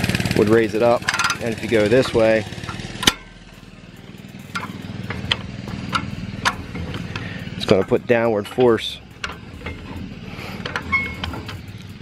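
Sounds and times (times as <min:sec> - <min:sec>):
low engine hum: 0:00.0 - 0:12.0
hand crank clicking: 0:01.0 - 0:03.3, 0:04.4 - 0:12.0.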